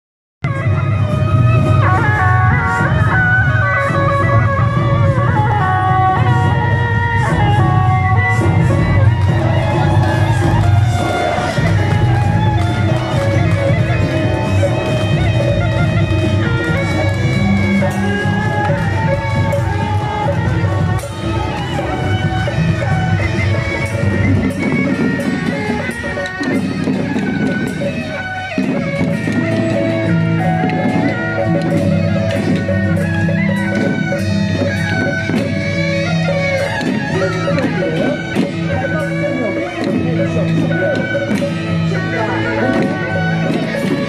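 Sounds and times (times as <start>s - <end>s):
drums: 0.4s - 44.0s
reed-pipe melody: 0.4s - 44.0s.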